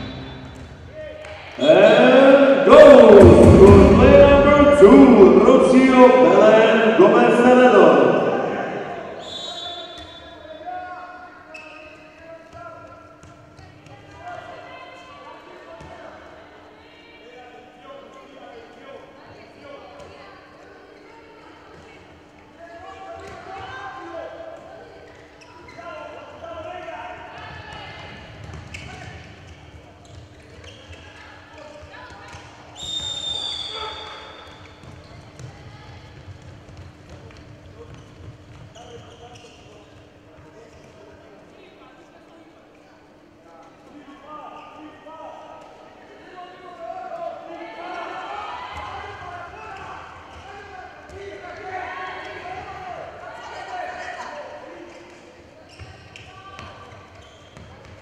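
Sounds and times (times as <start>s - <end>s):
referee whistle blast: 0.0s - 0.7s, 9.2s - 10.6s, 32.8s - 34.4s
players calling out: 1.6s - 10.2s
ball bouncing on court floor: 27.4s - 29.2s, 34.7s - 39.2s.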